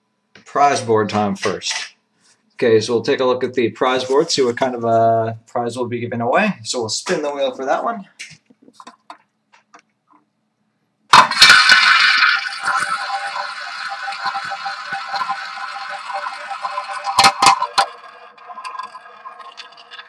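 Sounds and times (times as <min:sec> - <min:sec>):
roulette wheel spun by hand: 0:11.1 - 0:20.0
ball rattling around roulette bowl: 0:11.2 - 0:20.0.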